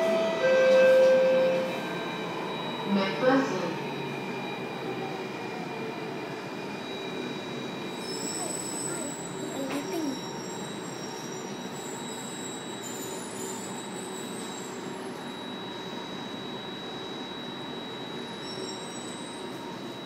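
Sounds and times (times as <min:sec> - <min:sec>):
metro train rumble: 0:00.0 - 0:20.0
wheel squeal: 0:06.8 - 0:19.7.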